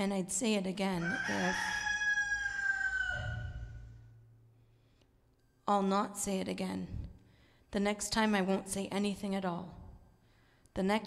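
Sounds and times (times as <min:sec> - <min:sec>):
rooster crowing: 0:01.0 - 0:04.0.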